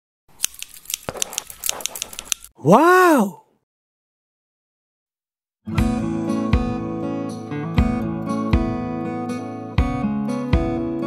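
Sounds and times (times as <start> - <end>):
sharp clicks and snips: 0.4 - 2.6.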